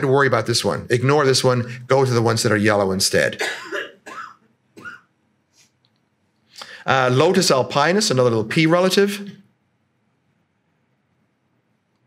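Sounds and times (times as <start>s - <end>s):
man coughing: 3.4s - 5.1s.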